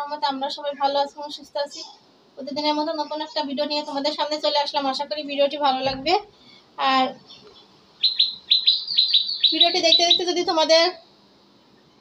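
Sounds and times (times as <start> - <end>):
small bird chirping: 7.2 - 10.8.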